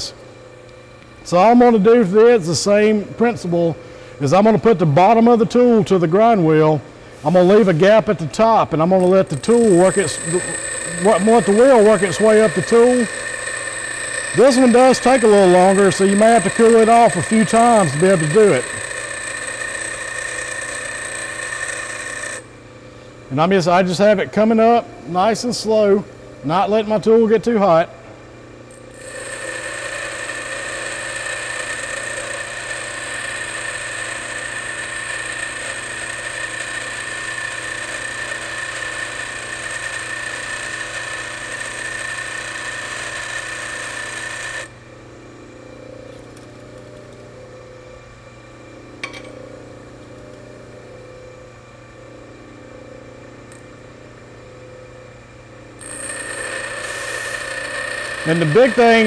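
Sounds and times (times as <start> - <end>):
grinder running free: 9.0 - 22.4, 28.9 - 44.7, 55.8 - 59.0
bench grinder grinding metal: 9.0 - 22.5, 28.9 - 44.7, 55.8 - 59.0.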